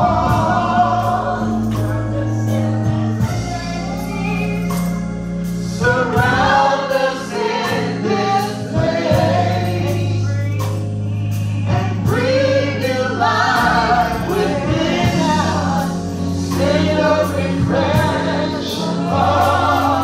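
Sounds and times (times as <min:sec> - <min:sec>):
group singing gospel: 0:00.0 - 0:20.0.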